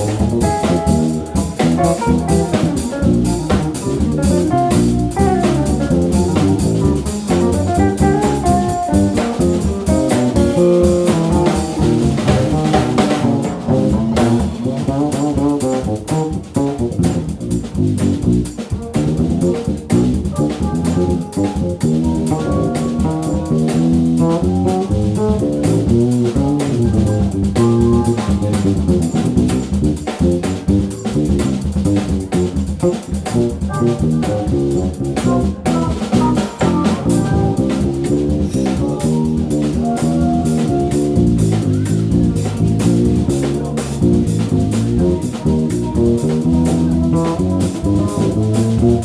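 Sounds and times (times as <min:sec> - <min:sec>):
drum kit and cymbals: 0:00.0 - 0:49.0
electric guitar melody: 0:00.0 - 0:49.0.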